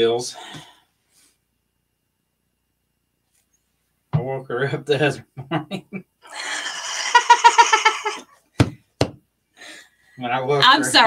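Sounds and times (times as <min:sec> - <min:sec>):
high-pitched laughter: 0:05.5 - 0:08.2
sharp knocks: 0:08.6 - 0:09.2.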